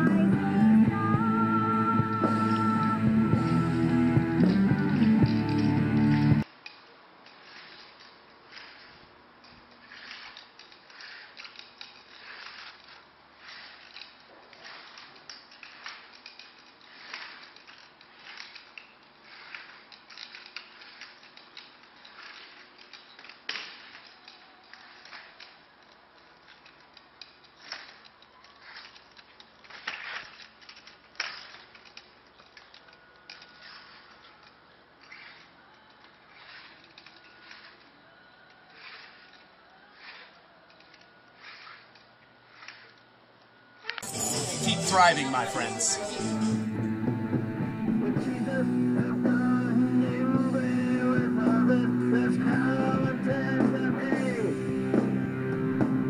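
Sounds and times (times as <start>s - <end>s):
rock music: 0.0s - 6.4s, 44.0s - 56.0s
metallic clicks and taps of walker: 4.4s - 44.0s.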